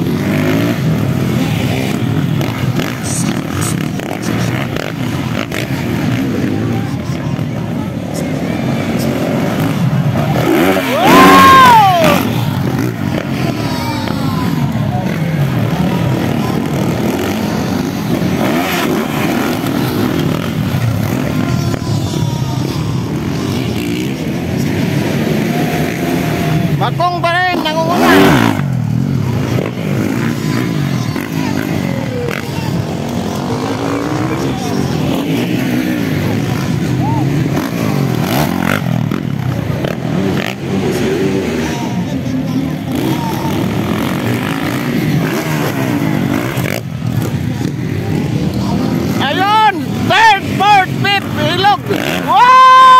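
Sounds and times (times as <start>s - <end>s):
crowd voices: 0.0s - 52.9s
dirt bike engines revving: 0.0s - 52.9s.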